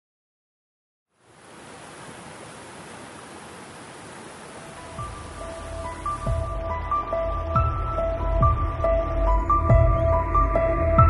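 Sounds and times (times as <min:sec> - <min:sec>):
steady rushing noise: 0:01.2 - 0:07.1.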